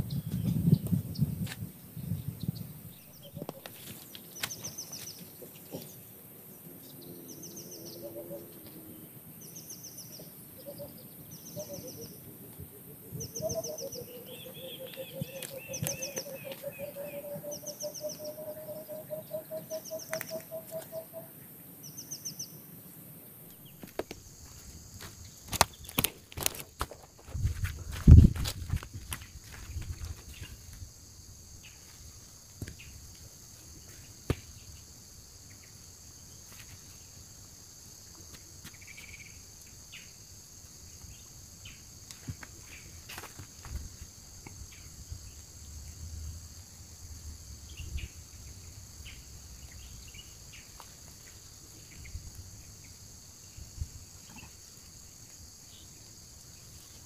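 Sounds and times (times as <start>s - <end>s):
insect drone: 0.0s - 57.0s
bird chirping: 2.0s - 22.7s.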